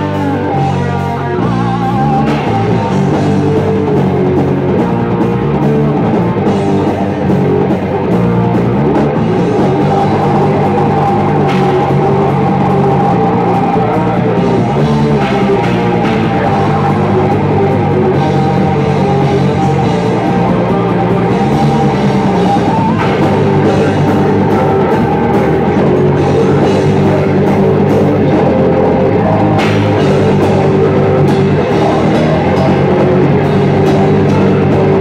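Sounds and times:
distorted electric guitars: 0.0s - 35.0s
pounding drum kit: 0.0s - 35.0s.

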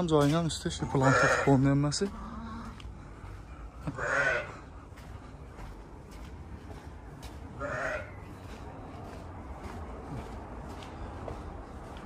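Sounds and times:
livestock bleat: 1.0s - 1.6s, 3.9s - 4.6s, 7.6s - 8.2s.

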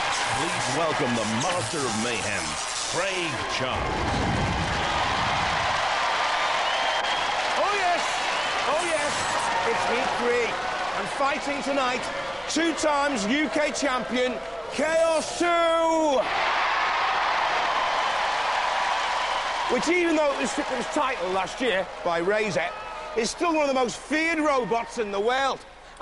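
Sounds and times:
audience applauding and cheering: 0.0s - 25.2s.

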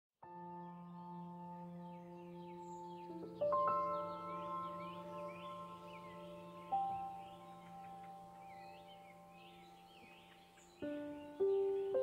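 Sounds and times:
ambient bell-like music: 0.4s - 12.0s
birds chirping: 0.5s - 12.0s.

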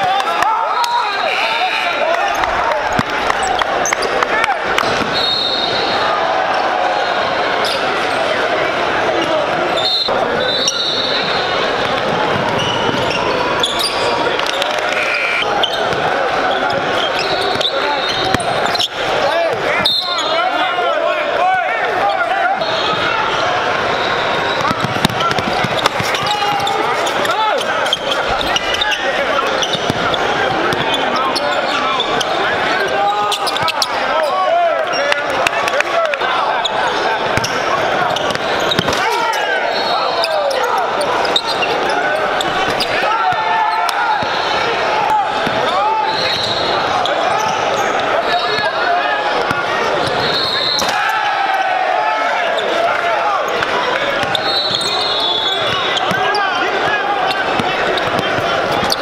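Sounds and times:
voices talking and shouting: 0.0s - 59.0s.

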